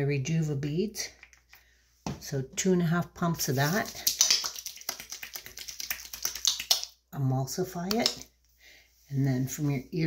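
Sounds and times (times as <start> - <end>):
wet palms rubbing sticky clicks: 1.2 - 1.6, 3.6 - 7.0.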